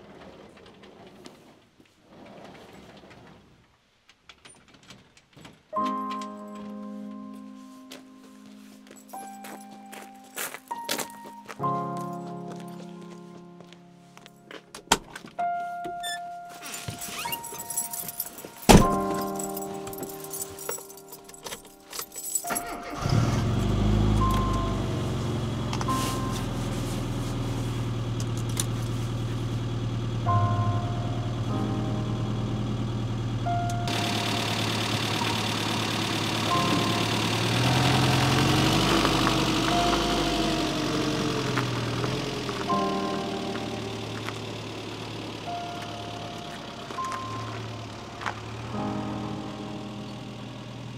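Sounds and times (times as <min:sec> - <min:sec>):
clicks and rattles: 0:04.1 - 0:06.8
car engine starting and idling: 0:16.6 - 0:50.9.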